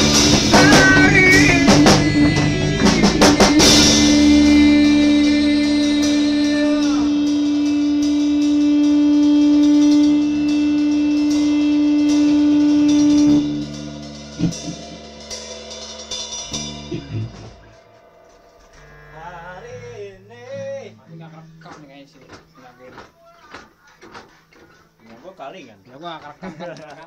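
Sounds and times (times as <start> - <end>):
cymbal and drum hits: 0.0 - 18.8
rock band final chord: 0.0 - 22.3
stray guitar and bass notes: 0.0 - 25.0.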